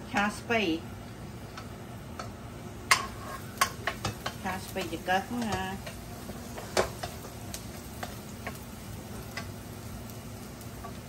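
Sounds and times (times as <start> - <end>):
garlic sizzling in hot oil: 0.0 - 11.0
spatula scraping a wok: 2.9 - 9.5.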